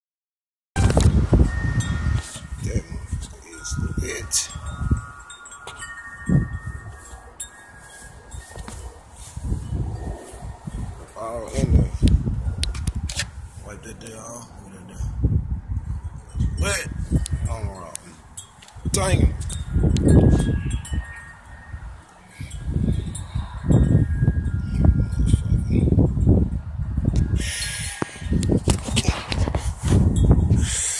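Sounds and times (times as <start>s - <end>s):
chime-like high tones: 0.8s - 11.6s, 16.4s - 25.7s
wind buffeting microphone: 0.8s - 30.9s.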